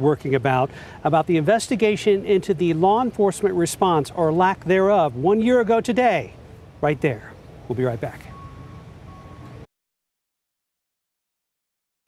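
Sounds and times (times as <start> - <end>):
street ambience: 0.0 - 9.7
faint high beep: 8.2 - 9.7.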